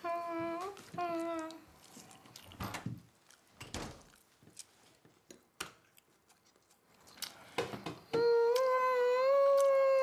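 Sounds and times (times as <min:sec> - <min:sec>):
woman humming: 0:00.0 - 0:01.6, 0:08.1 - 0:10.0.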